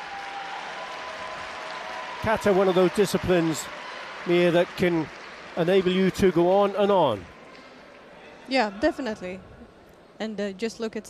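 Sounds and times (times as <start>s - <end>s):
crowd applauding: 0.0s - 8.2s.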